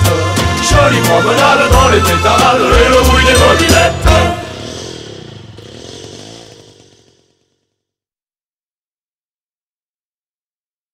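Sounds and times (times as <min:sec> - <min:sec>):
moped engine buzzing: 0:00.7 - 0:07.8.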